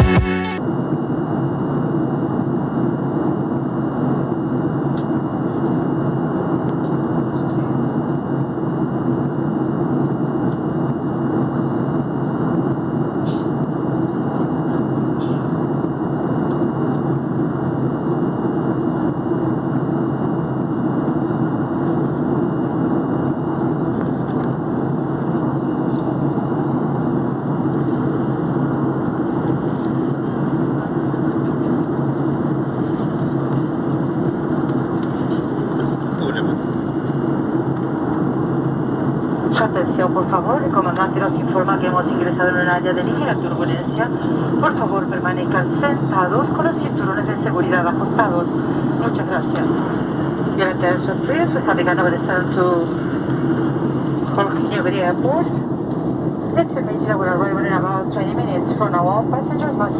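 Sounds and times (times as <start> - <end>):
airliner cabin airflow and engine: 0.6 - 59.9.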